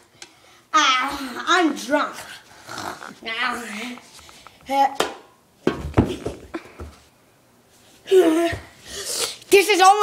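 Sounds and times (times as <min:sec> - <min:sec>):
boy making animal-like noises: 0:08.1 - 0:10.0.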